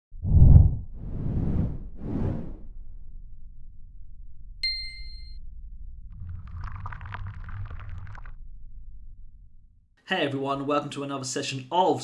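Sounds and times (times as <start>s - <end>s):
low rumble: 0.2s - 10.0s
bright bell-like ding: 4.6s - 5.4s.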